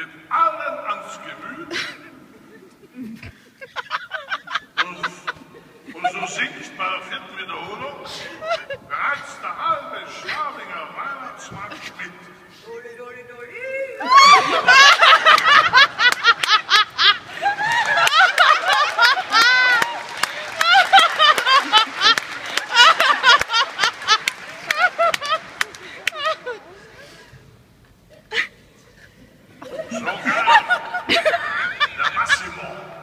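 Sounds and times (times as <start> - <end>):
audience laughing: 1.5 - 7.0, 7.6 - 12.1, 14.0 - 27.2, 29.6 - 33.0
person laughing: 29.6 - 32.6.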